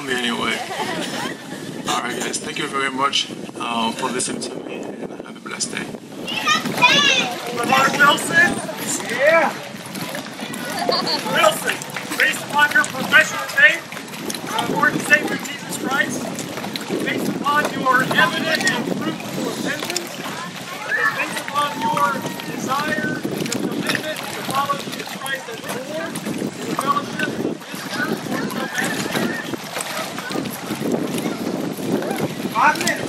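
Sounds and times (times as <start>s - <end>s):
men talking: 0.0s - 9.8s, 10.4s - 29.6s, 32.5s - 33.0s
water lapping: 0.0s - 33.0s
wind buffeting microphone: 0.0s - 33.0s
faint indistinct voices: 3.7s - 33.0s.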